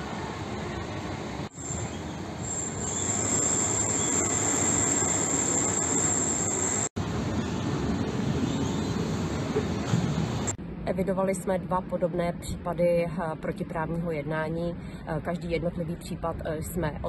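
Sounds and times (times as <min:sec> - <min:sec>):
high-pitched squeal: 0:01.5 - 0:07.6.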